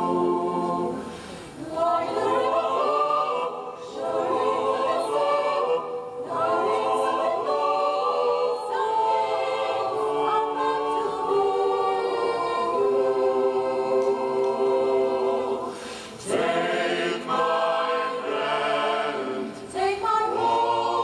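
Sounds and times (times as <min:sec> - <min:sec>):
a cappella choir singing: 0:00.0 - 0:21.0.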